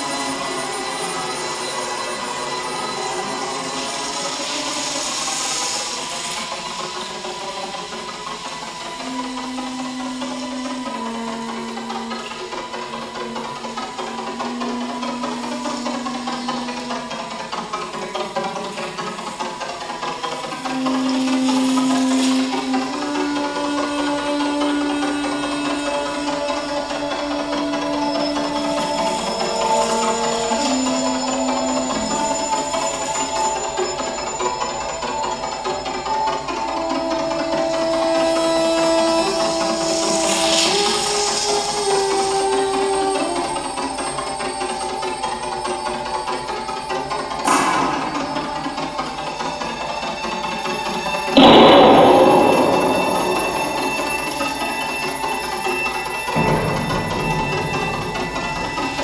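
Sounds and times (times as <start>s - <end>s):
high sustained tones: 0.0s - 50.3s, 51.2s - 59.0s
long held notes: 7.4s - 49.9s, 51.2s - 59.0s
shifting wash of sound: 51.4s - 55.2s.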